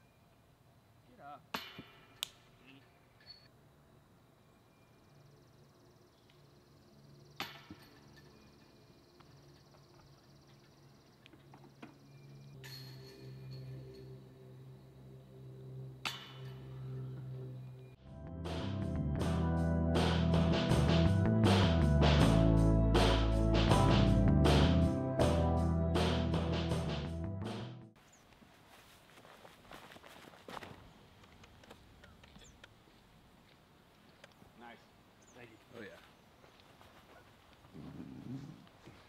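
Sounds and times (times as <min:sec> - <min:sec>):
faint outdoor ambience: 0:00.0 - 0:26.6, 0:27.9 - 0:39.0
discs striking with metallic ring: 0:12.6 - 0:14.2, 0:16.0 - 0:17.0
low music: 0:12.6 - 0:28.0.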